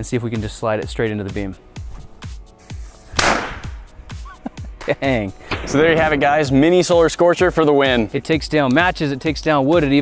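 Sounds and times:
background music: 0:00.0 - 0:10.0
firecracker bang: 0:03.1 - 0:04.0, 0:05.4 - 0:06.5.

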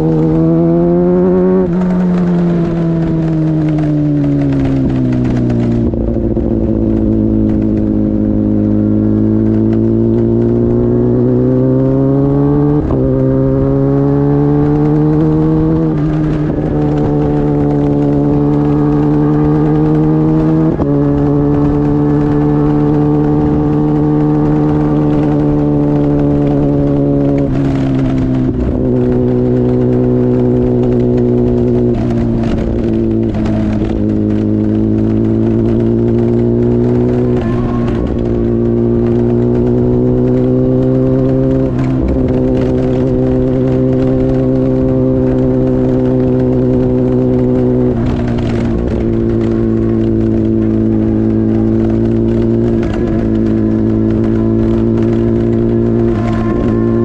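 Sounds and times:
motorcycle engine running: 0:00.0 - 0:57.0
constant low hum: 0:12.7 - 0:57.0.

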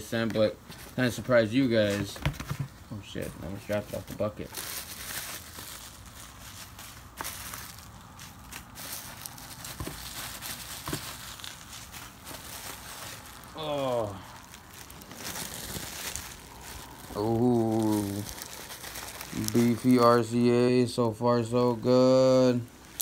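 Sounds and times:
bubble wrap rustling and crinkling: 0:00.0 - 0:23.0.

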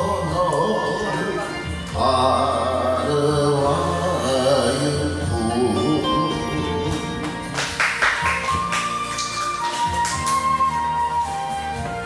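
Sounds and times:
karaoke backing band melody: 0:00.0 - 0:12.0
percussion hits: 0:06.1 - 0:10.6.

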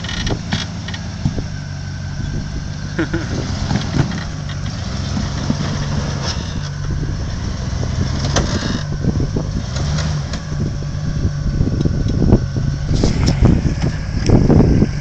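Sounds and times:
pickup engine running at low revs: 0:00.0 - 0:15.0.

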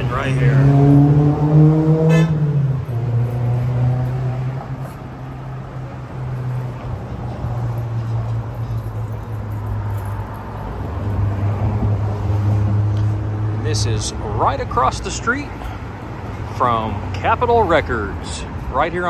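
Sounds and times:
street traffic engine hum: 0:00.0 - 0:19.0.

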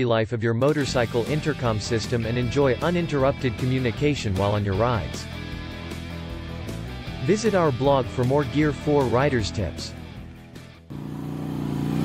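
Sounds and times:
outro music: 0:00.7 - 0:11.1
vehicle engine sound effect: 0:10.9 - 0:12.0.

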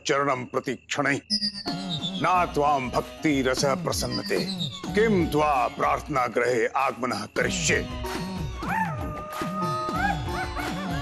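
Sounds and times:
comic music with sliding notes: 0:01.3 - 0:06.1.

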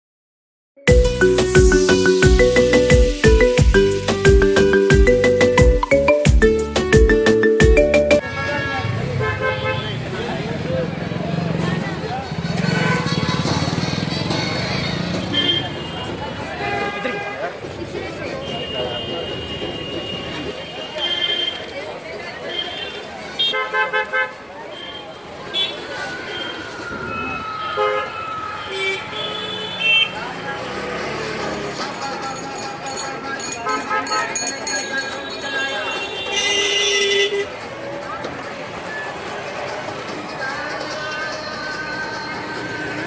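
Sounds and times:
street traffic: 0:00.8 - 0:43.0
background chatter: 0:08.2 - 0:43.0
people's voices: 0:08.2 - 0:43.0
vehicle horn toots: 0:33.6 - 0:37.5.

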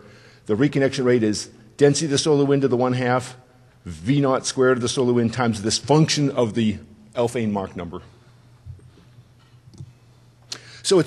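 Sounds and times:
sharp intake of breath: 0:00.0 - 0:00.5, 0:10.5 - 0:10.9
man speaking: 0:00.0 - 0:08.2, 0:10.8 - 0:11.0
faint low hum: 0:00.0 - 0:11.0.

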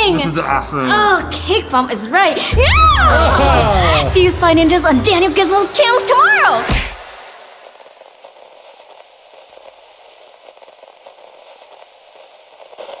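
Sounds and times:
crackling static: 0:03.6 - 0:13.0.

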